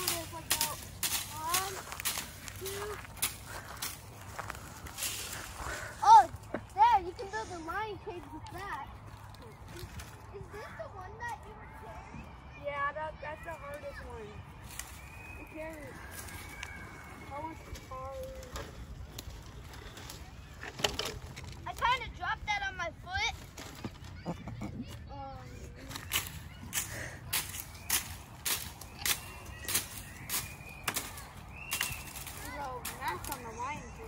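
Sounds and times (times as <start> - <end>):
footsteps crunching on twigs: 0.0 - 11.9, 13.4 - 20.7, 25.8 - 34.0
distant children's voices: 0.0 - 34.0.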